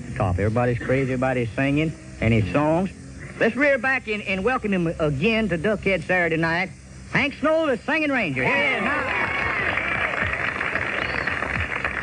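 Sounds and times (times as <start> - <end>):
audience applause on old radio: 8.5 - 12.0.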